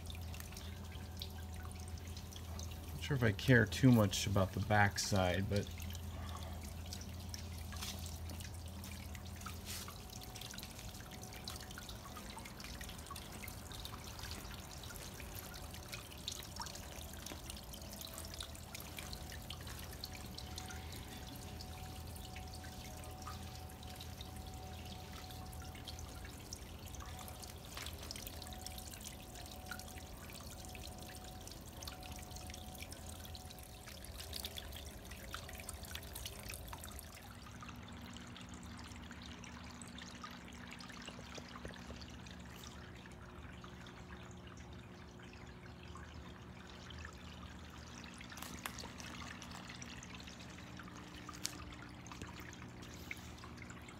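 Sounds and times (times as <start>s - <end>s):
low pump hum: 0.0s - 53.9s.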